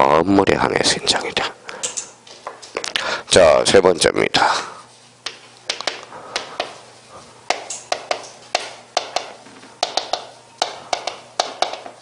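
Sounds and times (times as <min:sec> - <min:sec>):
chalk tapping on chalkboard: 0:05.2 - 0:06.8, 0:07.5 - 0:12.0.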